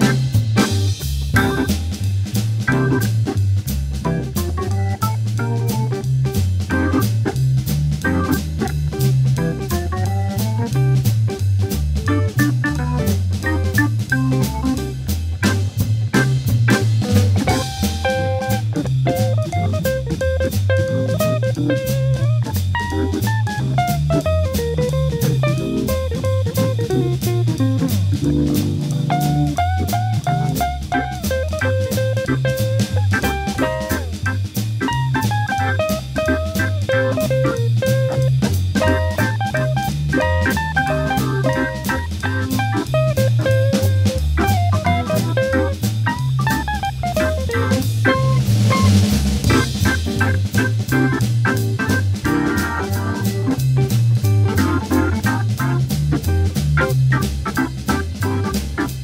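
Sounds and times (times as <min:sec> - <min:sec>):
drum kit swing beat: 0:00.0 - 0:59.0
organ: 0:00.0 - 0:59.0
electric guitar: 0:16.7 - 0:48.8.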